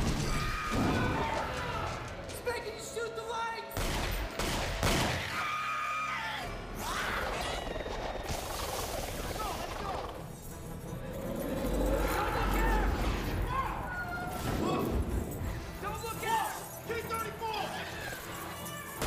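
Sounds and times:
dark score music: 0:00.0 - 0:19.0
wordless cries or screams: 0:05.1 - 0:08.2.

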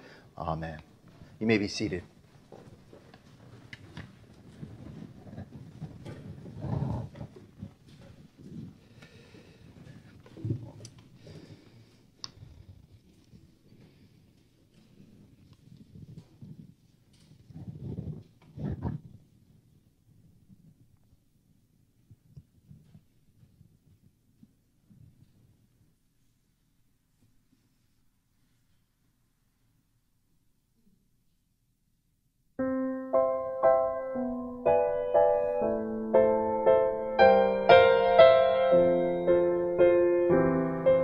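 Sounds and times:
congregation shuffling and bumping: 0:00.4 - 0:11.9.

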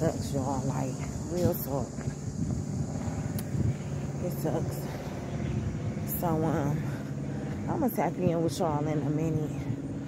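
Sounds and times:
wind on phone microphone: 0:00.0 - 0:06.9.

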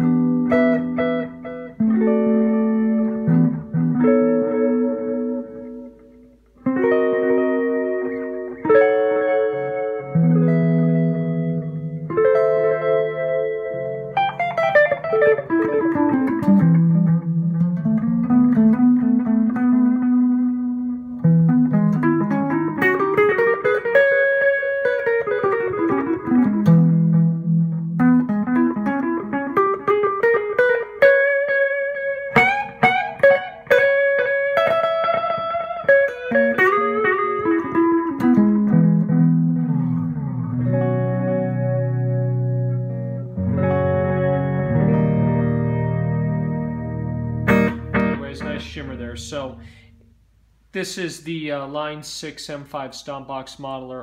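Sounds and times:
electric guitar with delay echoes: 0:00.0 - 0:50.2
sharp guitar strums: 0:00.0 - 0:54.0.

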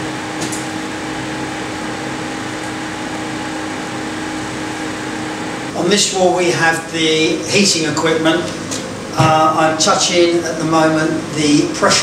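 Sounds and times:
mechanical hum of plant: 0:00.0 - 0:12.0.

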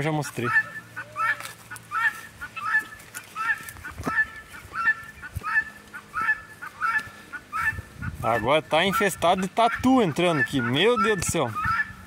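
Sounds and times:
guineafowl harsh high calls: 0:00.0 - 0:12.0.

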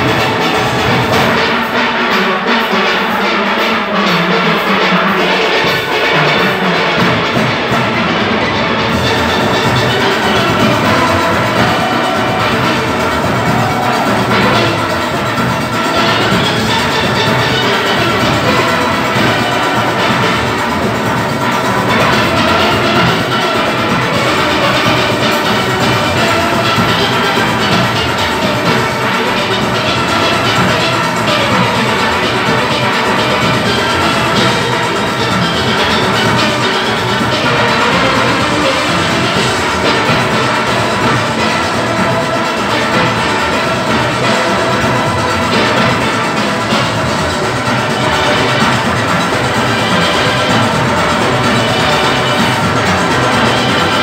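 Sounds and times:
steel orchestra playing: 0:00.0 - 0:54.0.

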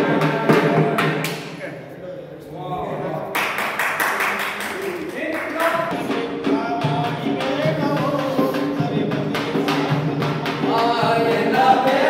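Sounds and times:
rapid rhythmic sharp hits: 0:00.0 - 0:01.7, 0:03.4 - 0:12.0.

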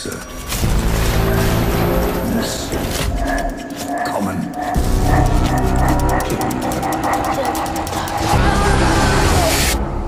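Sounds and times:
fast mechanical ticking: 0:03.2 - 0:08.6
person speaking: 0:03.5 - 0:09.7.

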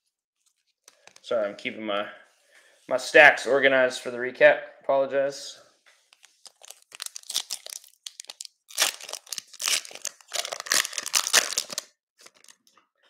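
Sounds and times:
plastic wrapper crinkling and tearing: 0:00.4 - 0:01.3, 0:06.0 - 0:12.8.

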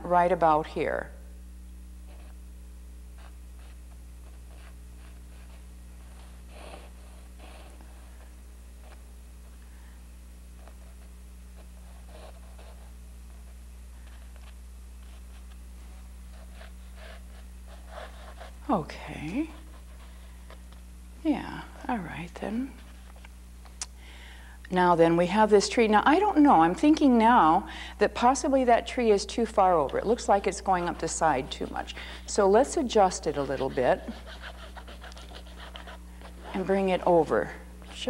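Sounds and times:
low electrical hum: 0:00.0 - 0:38.0
charcoal scratching on canvas: 0:02.0 - 0:02.4, 0:03.1 - 0:09.0, 0:10.5 - 0:20.6, 0:30.6 - 0:37.0.

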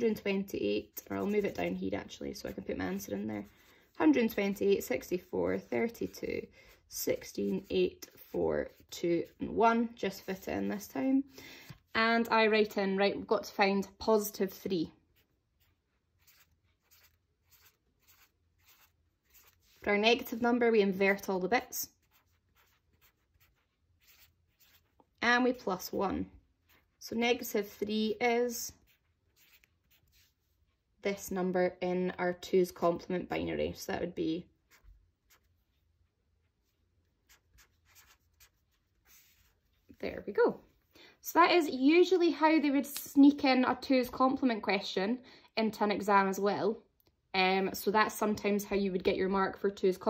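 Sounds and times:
marker scratching on paper: 0:00.0 - 0:11.0, 0:15.0 - 0:25.2, 0:26.6 - 0:30.7, 0:34.6 - 0:40.0
woman speaking: 0:00.0 - 0:11.3, 0:11.9 - 0:15.0, 0:19.8 - 0:21.9, 0:25.2 - 0:26.4, 0:27.0 - 0:28.8, 0:31.0 - 0:34.5, 0:39.9 - 0:46.8, 0:47.4 - 0:50.0
marker writing on paper: 0:15.1 - 0:20.5, 0:21.9 - 0:25.1, 0:28.8 - 0:30.6, 0:34.7 - 0:35.6, 0:37.1 - 0:39.9.

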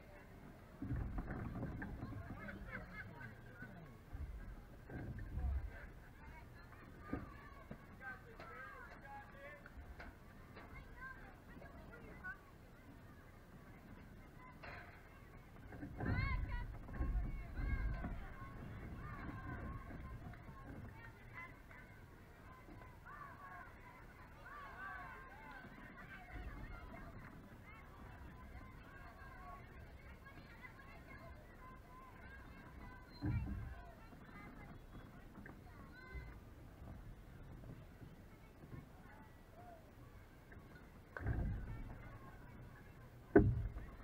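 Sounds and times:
people chattering and calling out: 0:00.0 - 0:44.0.

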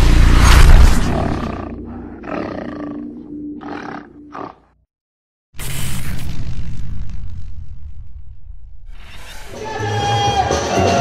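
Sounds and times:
animal roaring: 0:01.0 - 0:04.7
loud boom: 0:05.6 - 0:09.0.

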